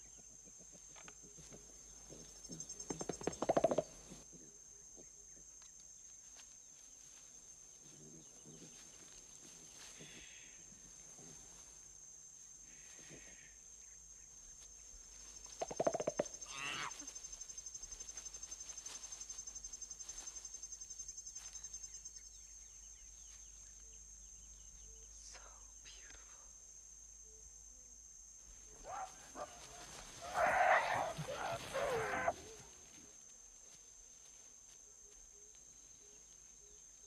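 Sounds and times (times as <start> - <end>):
high insect chirring: 12.7 - 32.6
low grunting call: 30.2 - 32.5.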